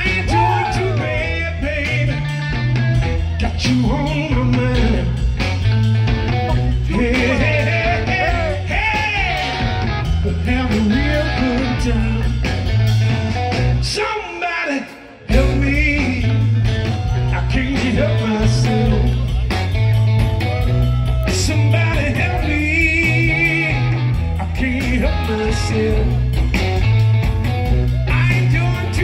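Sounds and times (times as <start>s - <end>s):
person singing: 0.0s - 5.3s, 6.3s - 26.5s, 27.9s - 29.0s
electric blues band playing: 0.0s - 29.0s.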